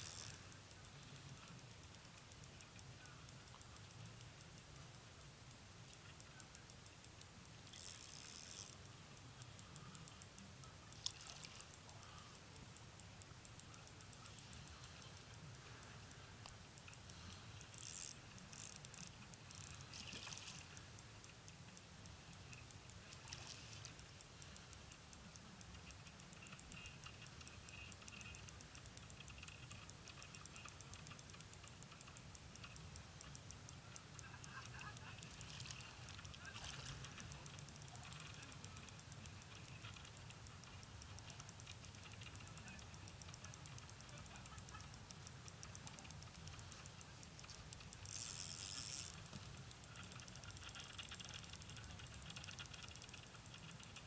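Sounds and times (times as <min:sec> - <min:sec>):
fast steady ticking: 0:00.0 - 0:54.0.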